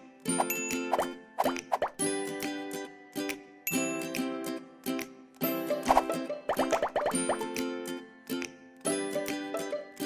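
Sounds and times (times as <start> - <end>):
cartoon pops gliding in pitch: 5.9 - 7.4.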